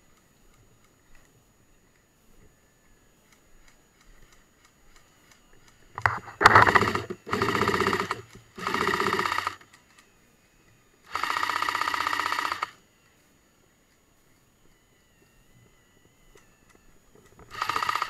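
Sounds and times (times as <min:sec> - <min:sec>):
airsoft rifle full-auto bursts: 0:06.0 - 0:09.7, 0:11.1 - 0:12.8, 0:17.5 - 0:18.0.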